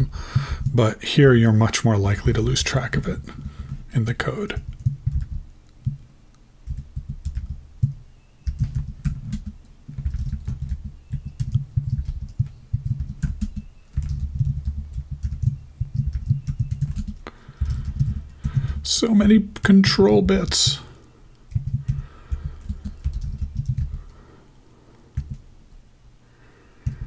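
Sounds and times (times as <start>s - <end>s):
rapid typing on keyboard: 0.0s - 0.8s, 2.1s - 6.0s, 6.6s - 20.9s, 21.5s - 24.2s, 25.1s - 25.4s, 26.8s - 27.0s.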